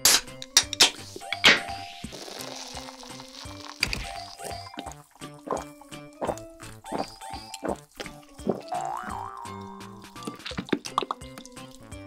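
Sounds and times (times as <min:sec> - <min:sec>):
can pull tab cracking: 0:00.0 - 0:01.0
soda fizzing hiss: 0:00.9 - 0:05.0.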